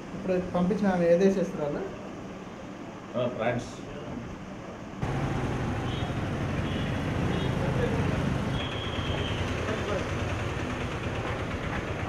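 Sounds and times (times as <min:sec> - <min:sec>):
street traffic: 0:05.0 - 0:12.0.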